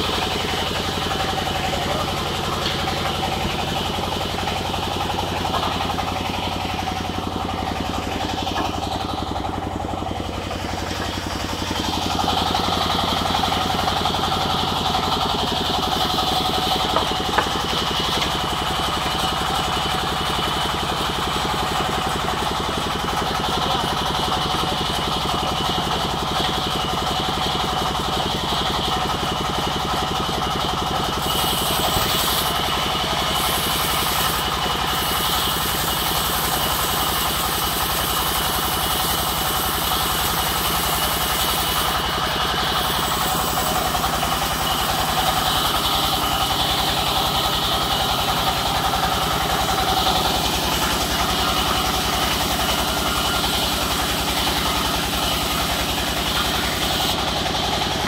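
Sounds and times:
band saw running: 0.0 - 58.0.

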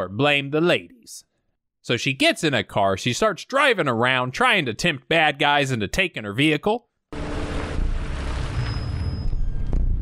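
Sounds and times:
car engine and road rumble: 7.2 - 10.0.

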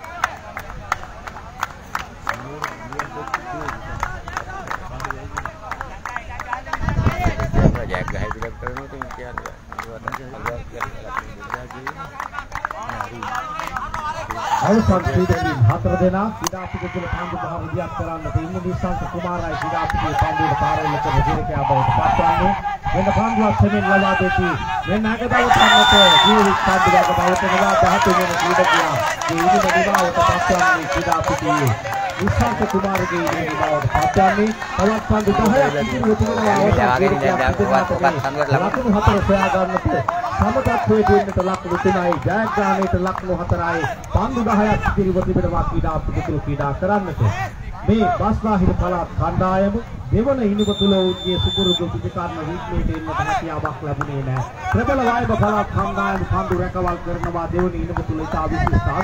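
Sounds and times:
people talking and calling out: 0.0 - 59.0
people shouting: 19.0 - 33.5.

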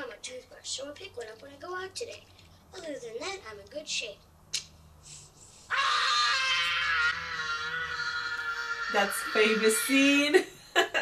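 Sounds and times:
boy screaming: 5.7 - 10.0.

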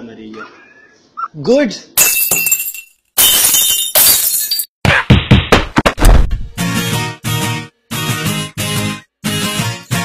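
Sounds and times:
glass shattering: 2.0 - 4.7.

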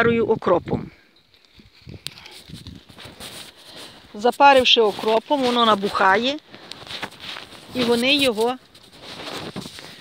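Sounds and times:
rustling in dry stubble: 1.2 - 10.0.

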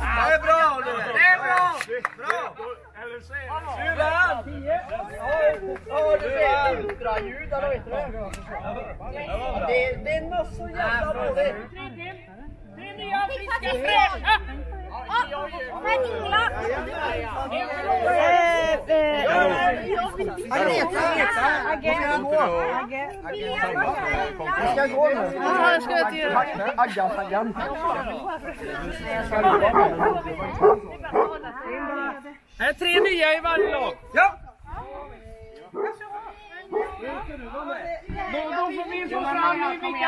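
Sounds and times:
overlapping chatter of adults: 0.0 - 40.0
people talking and calling out: 0.0 - 40.0.

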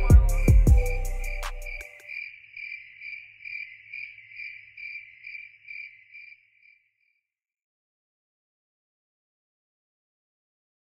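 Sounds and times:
hip-hop beat: 0.0 - 2.0
cricket chirping: 0.0 - 7.3.

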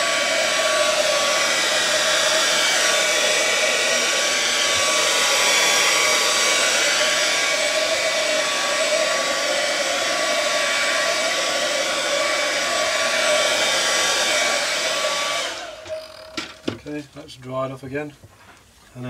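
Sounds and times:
hair dryer blowing: 0.0 - 16.8.

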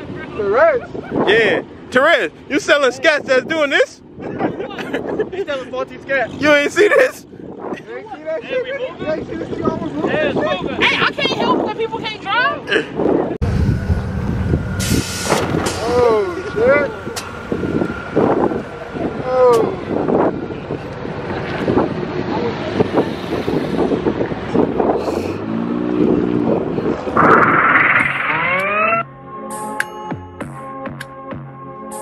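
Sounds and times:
wind noise on microphone: 0.0 - 1.8, 2.9 - 8.2, 8.8 - 16.2, 17.2 - 29.0
car engines running: 13.4 - 29.0
engine revving: 25.1 - 29.1
electronic music: 27.1 - 29.2.

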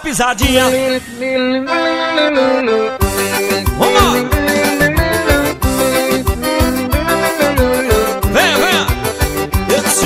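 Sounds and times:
band music: 0.4 - 10.0
electric guitar held notes: 0.5 - 9.7.

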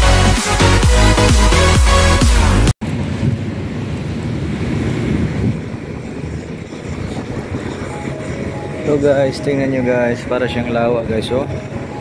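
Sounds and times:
wind buffeting microphone: 2.8 - 12.0.

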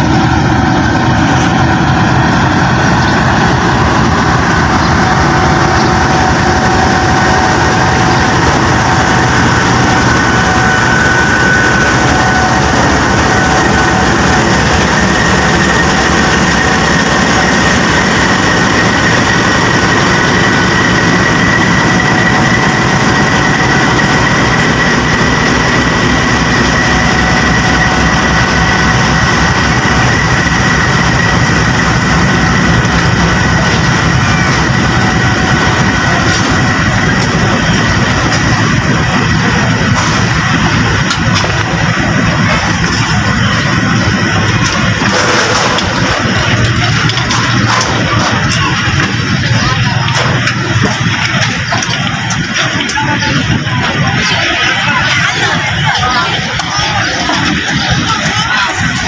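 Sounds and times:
diesel locomotive engine whining: 0.0 - 59.0
train coaches rolling past: 0.0 - 59.0.

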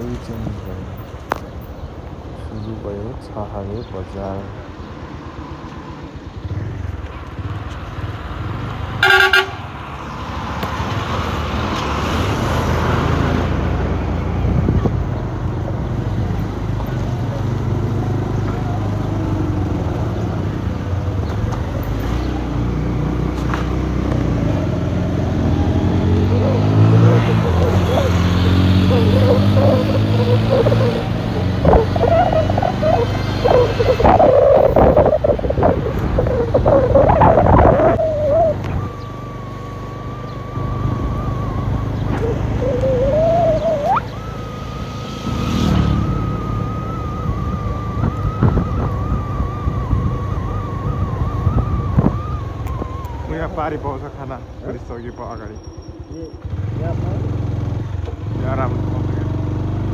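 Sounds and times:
road noise: 0.0 - 59.9
vehicle engine: 0.0 - 59.9
steady high tone: 26.1 - 53.8.

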